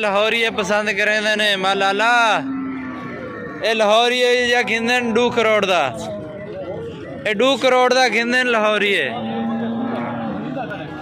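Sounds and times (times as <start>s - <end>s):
bull mooing: 1.6s - 7.1s, 8.9s - 11.0s.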